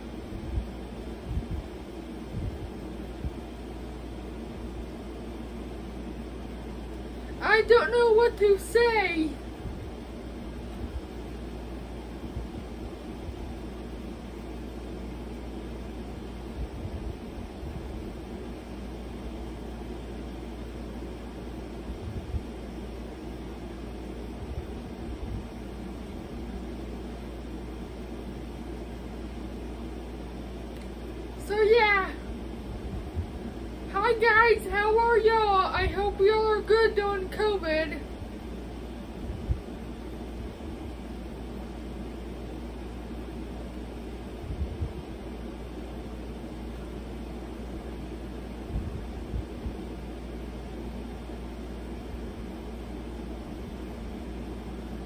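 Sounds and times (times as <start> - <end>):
room hum and hiss: 0.0 - 55.0.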